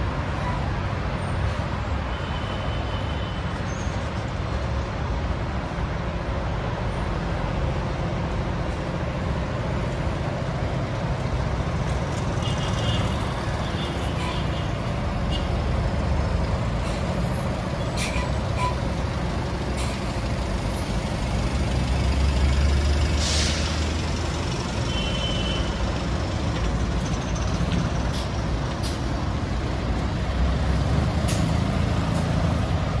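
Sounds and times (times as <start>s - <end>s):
heavy vehicle engines rumbling: 0.0s - 33.0s
air brakes hissing: 16.8s - 18.9s, 23.0s - 24.1s.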